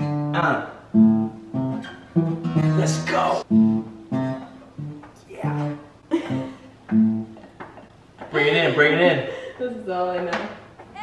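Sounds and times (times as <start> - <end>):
acoustic guitar strumming: 0.0 - 8.6
person speaking: 2.6 - 3.5.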